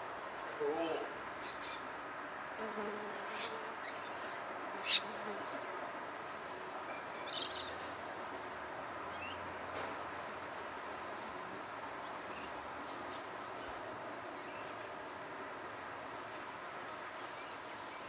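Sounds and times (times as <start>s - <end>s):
outdoor background hiss: 0.0s - 18.0s.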